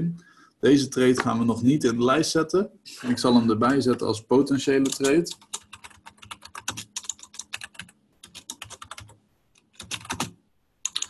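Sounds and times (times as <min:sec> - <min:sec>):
computer keyboard typing: 0:04.8 - 0:11.0.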